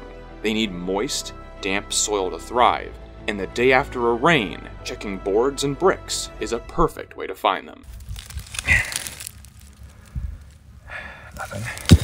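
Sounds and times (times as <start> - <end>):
concrete block handling rumble: 7.9 - 12.0
dull thump: 11.7 - 12.0.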